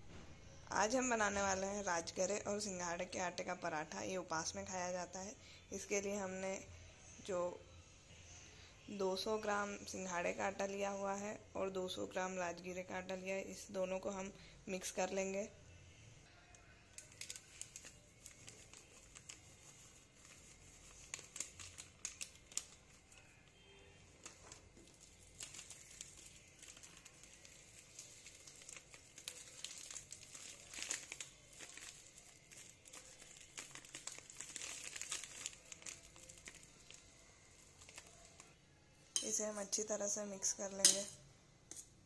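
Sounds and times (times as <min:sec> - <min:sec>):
plastic packets crinkling: 0:16.9 - 0:38.6.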